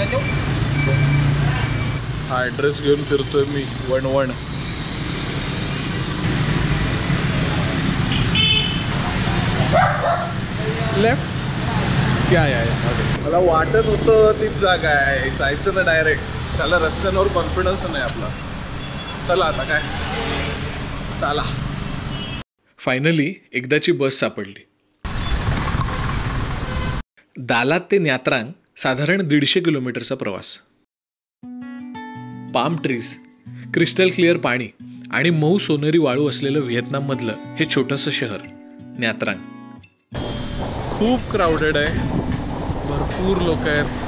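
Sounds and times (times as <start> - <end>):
motorbikes passing: 0.0 - 22.2, 40.2 - 44.0
short horn toot: 8.1 - 8.9
bus engine running: 40.2 - 44.0.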